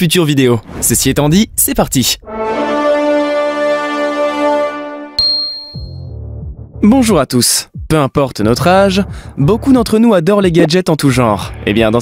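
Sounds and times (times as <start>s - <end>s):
intro music: 2.2s - 7.2s
low background music: 2.2s - 12.0s
bright chime: 5.2s - 6.1s.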